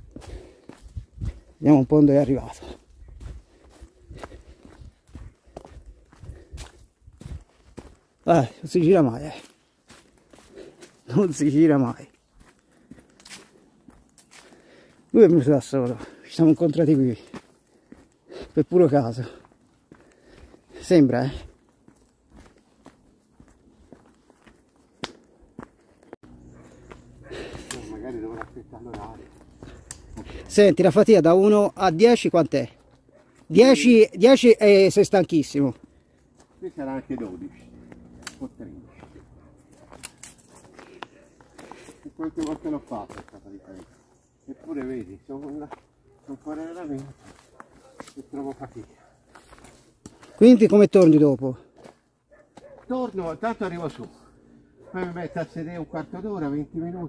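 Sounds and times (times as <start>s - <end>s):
footsteps on trail: 0.0s - 57.0s.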